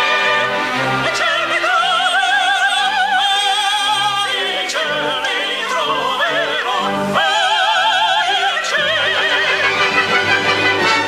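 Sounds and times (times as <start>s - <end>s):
soprano and tenor operatic singing: 0.0s - 11.0s.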